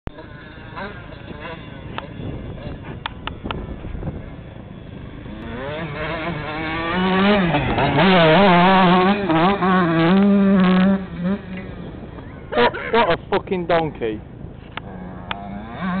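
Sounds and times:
dirt bike engine approaching: 0:00.1 - 0:16.0.

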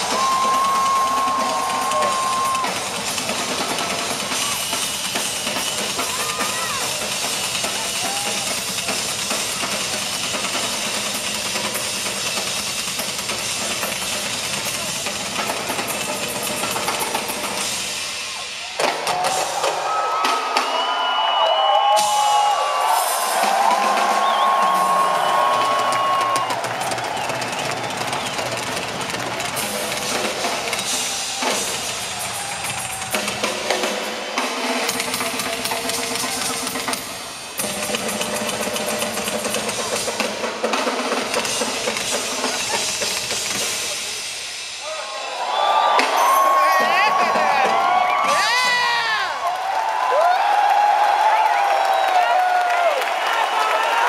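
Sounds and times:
rock drum kits playing: 0:00.0 - 0:54.0.

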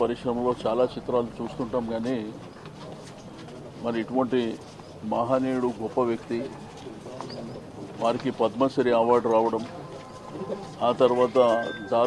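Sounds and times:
man speaking: 0:08.0 - 0:12.0.

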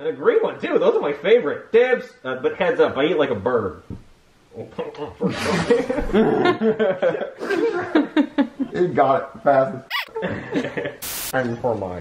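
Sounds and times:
people laughing: 0:04.8 - 0:09.0, 0:10.0 - 0:11.0.

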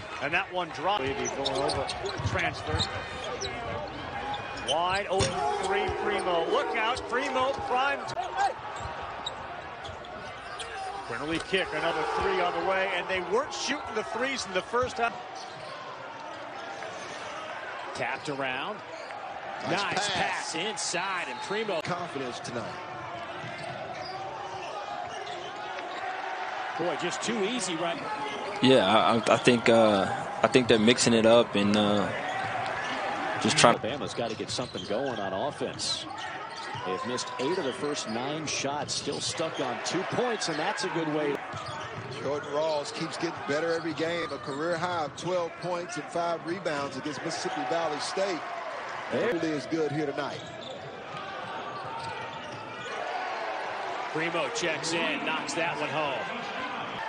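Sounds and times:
players moving on court: 0:00.1 - 0:57.0.

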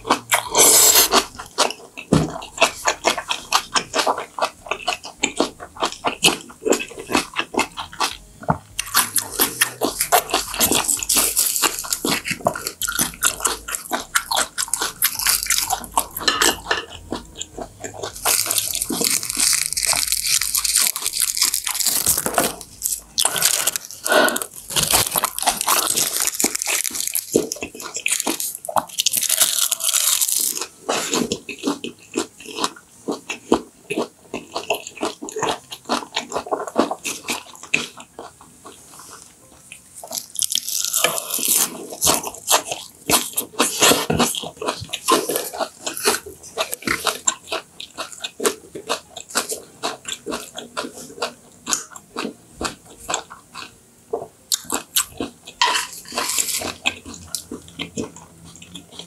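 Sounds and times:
wet mouth sounds: 0:00.0 - 0:38.4
close chewing: 0:00.0 - 0:59.0
seaweed crackling: 0:18.1 - 0:30.7.

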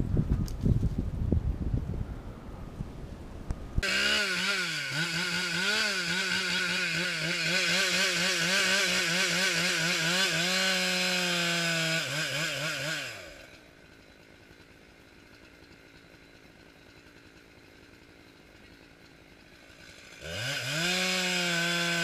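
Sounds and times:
chainsaw running at high revs: 0:03.8 - 0:22.0.

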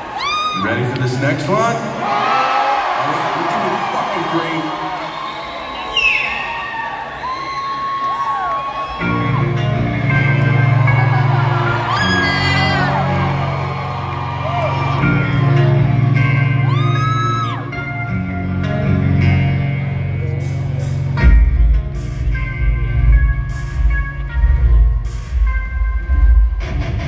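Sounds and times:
crowd cheering and whooping: 0:00.0 - 0:01.1, 0:01.9 - 0:18.2.

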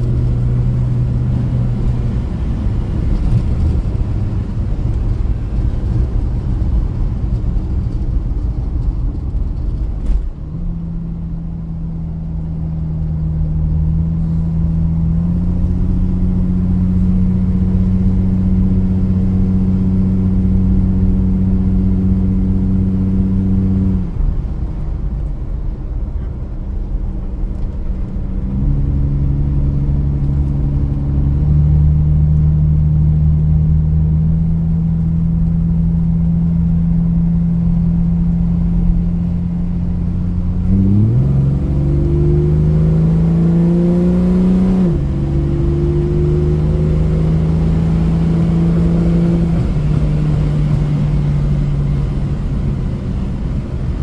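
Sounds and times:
car engine revving: 0:09.8 - 0:25.4, 0:26.9 - 0:54.0.

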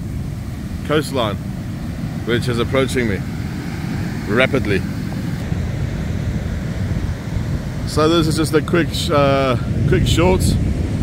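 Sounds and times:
ocean surf washing up beach: 0:00.0 - 0:11.0
wind on microphone: 0:00.0 - 0:11.0.

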